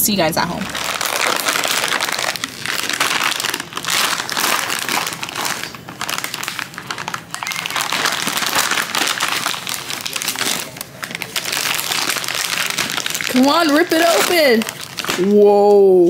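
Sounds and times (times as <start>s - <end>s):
wrapping paper crinkling and ripping: 0.5s - 15.9s.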